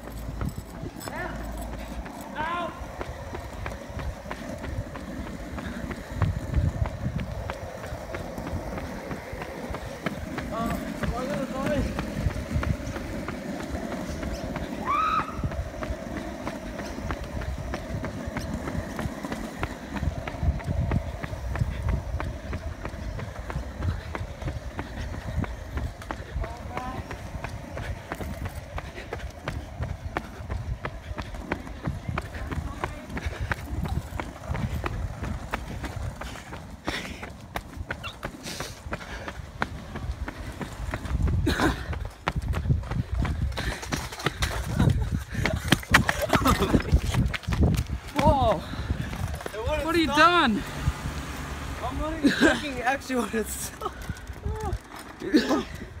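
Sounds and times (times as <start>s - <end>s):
wind on microphone: 0.0s - 52.1s
handling rumble: 0.0s - 56.0s
running footsteps on asphalt: 0.0s - 56.0s.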